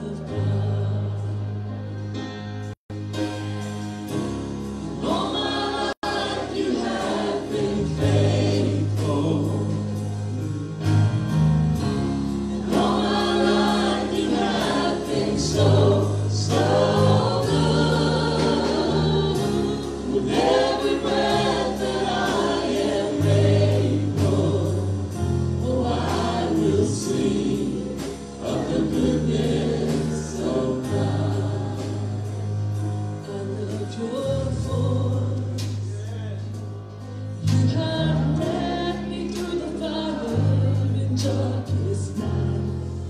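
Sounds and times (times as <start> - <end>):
group singing gospel music: 0.0 - 2.7, 4.0 - 43.0.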